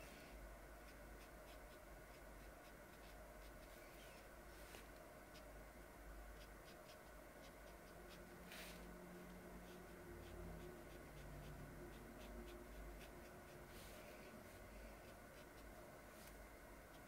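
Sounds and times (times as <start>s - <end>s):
paintbrush strokes on paper: 0.0s - 5.6s, 6.3s - 17.0s
low steady hum: 0.0s - 17.0s.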